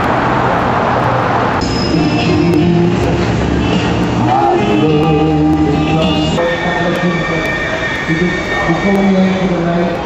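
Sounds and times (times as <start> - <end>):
elevated train running overhead: 0.0 - 10.0
wheels squealing on rails: 1.6 - 10.0.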